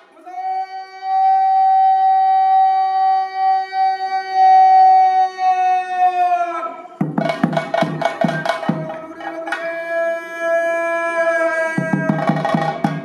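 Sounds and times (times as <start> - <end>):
drum stick strokes: 7.0 - 9.7.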